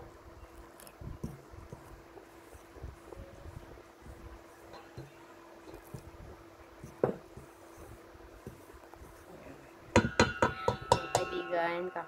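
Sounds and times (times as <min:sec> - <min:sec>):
wooden spatula knocking glass bowl: 0:09.9 - 0:11.8.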